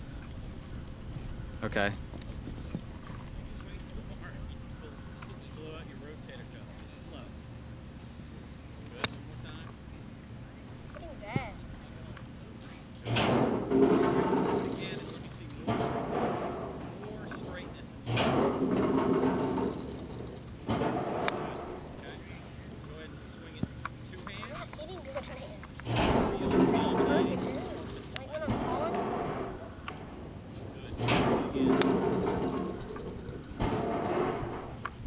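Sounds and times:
people's voices: 8.8 - 34.8
golf club striking ball: 18.1 - 22.1, 25.8 - 34.9.

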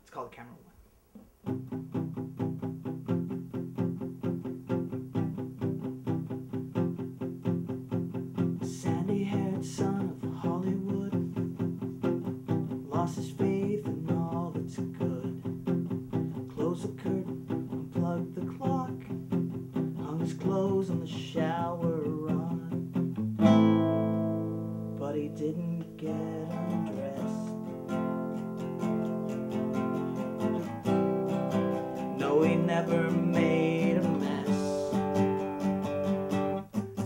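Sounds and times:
classical guitar strummed: 1.3 - 37.0
man singing: 8.6 - 11.5, 12.7 - 15.6, 16.4 - 19.2, 20.0 - 22.8, 25.0 - 27.7, 32.1 - 35.2.

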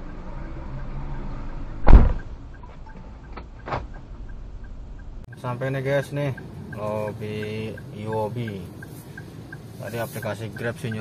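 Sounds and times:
low engine hum: 0.0 - 11.0
car door shutting: 1.8 - 3.9.

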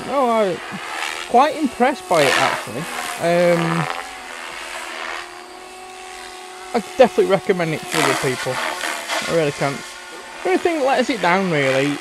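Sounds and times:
rc helicopter flying overhead: 0.0 - 12.0.

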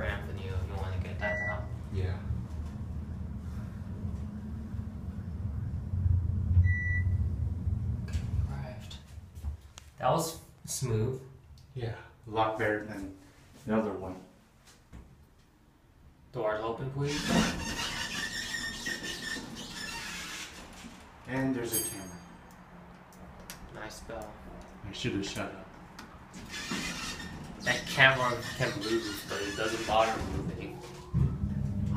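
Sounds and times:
elevator car rumbling: 0.0 - 9.4, 17.1 - 31.9
high-pitched squeal: 26.4 - 31.9.

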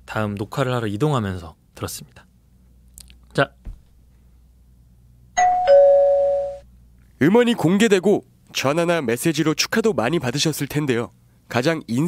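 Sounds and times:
two-note ding-dong chime: 5.4 - 6.7.

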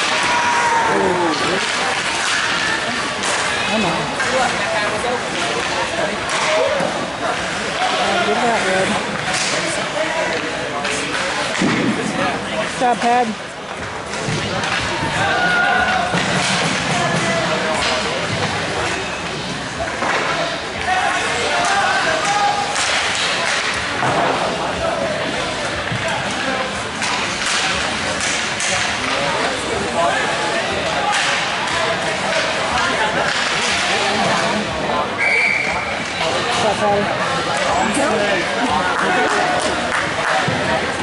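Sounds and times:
hockey sticks and puck clacking: 0.0 - 34.6, 38.9 - 41.0
high referee whistle: 35.2 - 35.9.

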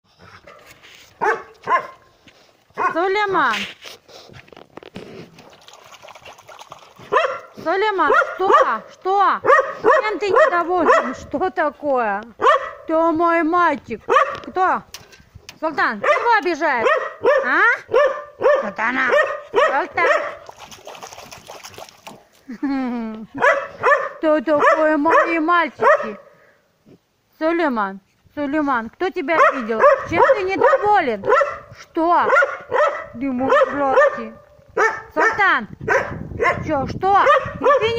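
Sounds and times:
dog barking: 1.2 - 2.1, 2.8 - 3.0, 7.1 - 11.2, 12.4 - 12.9, 14.1 - 14.5, 16.0 - 20.4, 23.4 - 26.3, 29.4 - 37.9.

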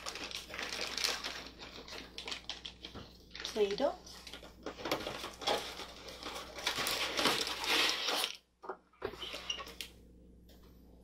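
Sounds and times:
cardboard and plastic rustling: 0.0 - 9.9.

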